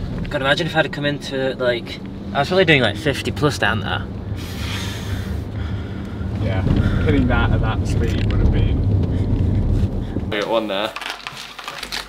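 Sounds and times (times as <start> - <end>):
car cabin road rumble: 0.0 - 10.4
breathy hiss: 4.3 - 7.1.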